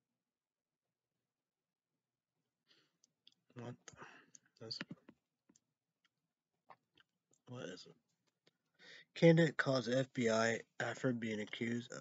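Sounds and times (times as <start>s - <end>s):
man breathing: 8.8s - 9.2s.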